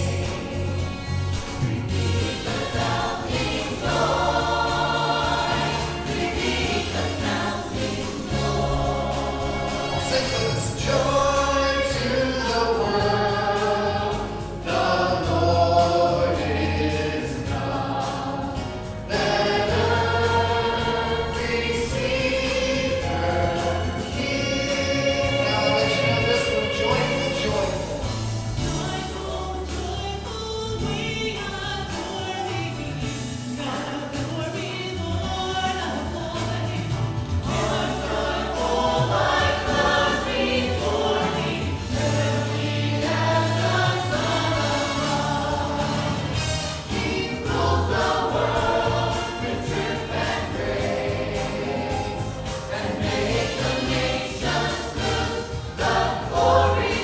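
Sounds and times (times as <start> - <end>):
choir singing: 0.0 - 35.0, 35.7 - 57.0
bass notes: 0.0 - 57.0
drums: 0.0 - 57.0
piano: 0.0 - 57.0.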